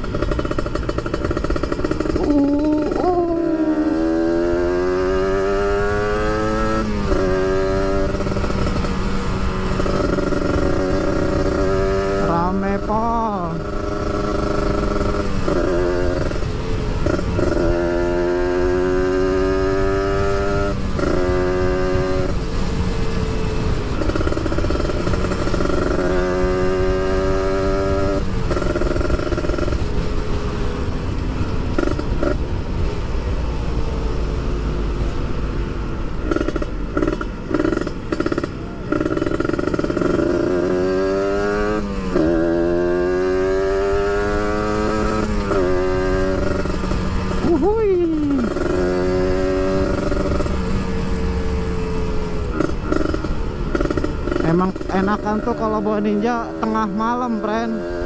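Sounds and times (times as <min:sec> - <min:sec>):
motorcycle engine accelerating: 0:00.0 - 0:58.0
wind and road noise: 0:00.0 - 0:58.0.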